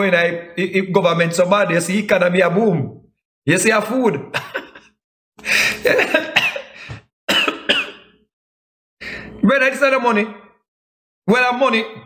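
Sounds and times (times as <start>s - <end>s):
man's laughing coughs: 4.3s - 5.0s, 5.6s - 8.2s.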